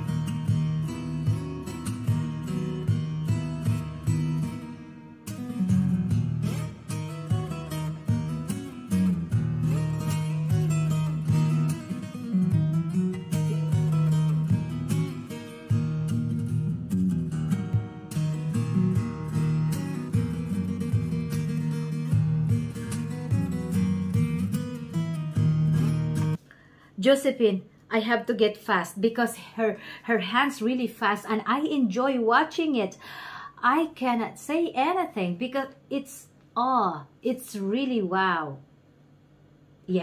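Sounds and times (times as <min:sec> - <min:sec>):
fingerstyle acoustic guitar: 0:00.0 - 0:26.4.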